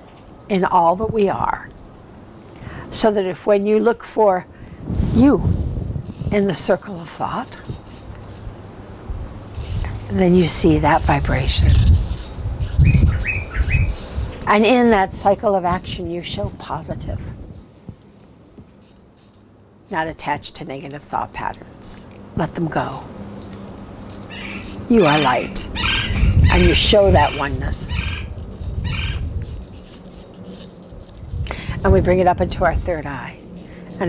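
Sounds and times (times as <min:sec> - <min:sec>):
wind buffeting microphone: 0:04.6 - 0:18.0, 0:24.6 - 0:30.0, 0:30.9 - 0:34.0
small bird chirping: 0:12.7 - 0:14.0.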